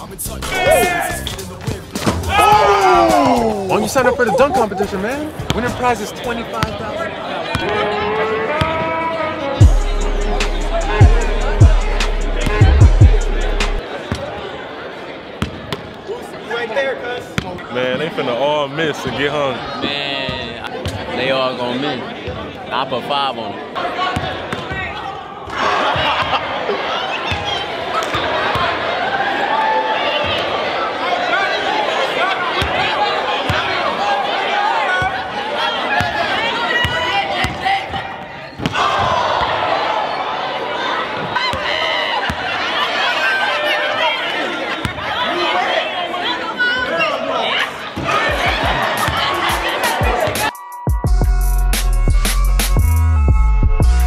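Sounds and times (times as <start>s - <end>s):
people talking in a hall: 0.0s - 51.2s
crowd chatter echoing: 0.0s - 54.0s
music with deep bass beat: 9.6s - 13.8s, 49.5s - 54.0s.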